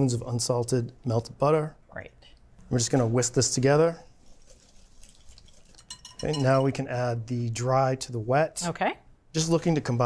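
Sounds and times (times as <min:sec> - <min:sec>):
whisk stirring batter in glass bowl: 0:04.2 - 0:06.8.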